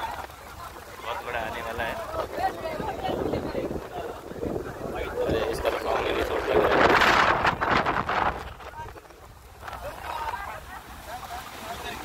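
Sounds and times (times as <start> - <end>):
surf breaking over rocks: 0.0 - 12.0.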